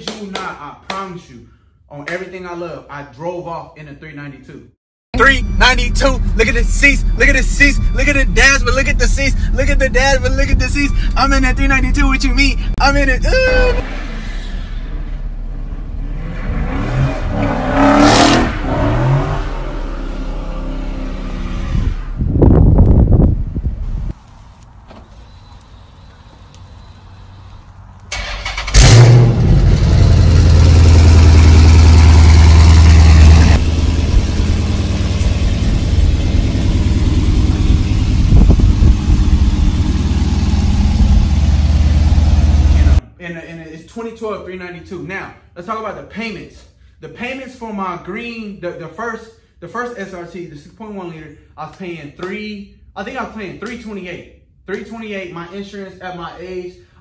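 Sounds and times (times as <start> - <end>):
deep engine drone: 5.2 - 20.9, 28.7 - 43.0
car engine revving: 5.2 - 22.2, 28.1 - 43.0.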